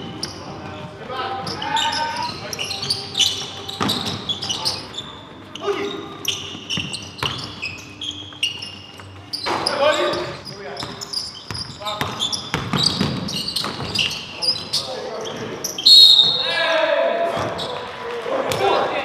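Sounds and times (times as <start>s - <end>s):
sneakers squeaking on court: 0.0s - 16.5s
basketball bouncing: 10.8s - 14.1s
players shouting: 16.0s - 19.0s.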